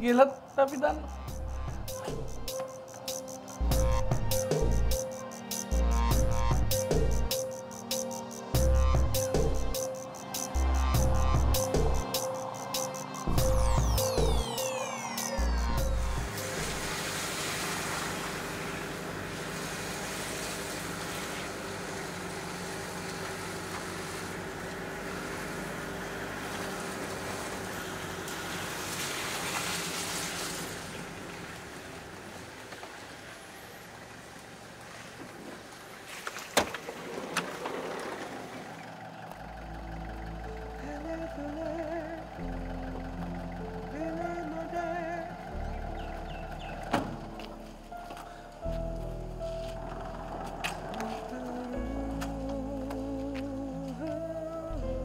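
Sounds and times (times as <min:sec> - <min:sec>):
background music with deep bass: 0:00.0 - 0:17.2, 0:39.3 - 0:55.0
vehicle driving heard from inside: 0:15.4 - 0:35.2, 0:37.8 - 0:55.0.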